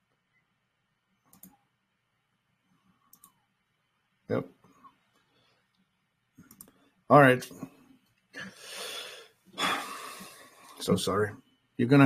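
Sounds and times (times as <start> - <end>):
computer mouse clicks: 1.2 - 1.6, 3.1 - 3.4, 5.1 - 6.8.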